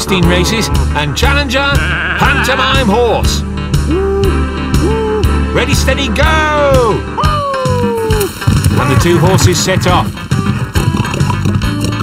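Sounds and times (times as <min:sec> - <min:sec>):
background music with bass: 0:00.0 - 0:12.0.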